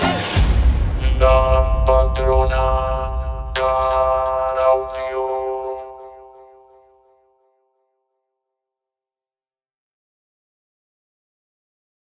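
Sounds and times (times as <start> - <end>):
sharp accented strikes: 0.1 - 6.8
dance music chord over deep bass: 0.4 - 6.7.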